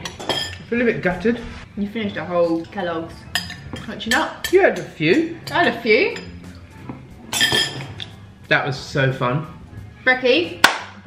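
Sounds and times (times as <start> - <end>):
spoon ringing clink: 7.3 - 7.9
metal spoon scraping glass bowl: 7.3 - 8.2.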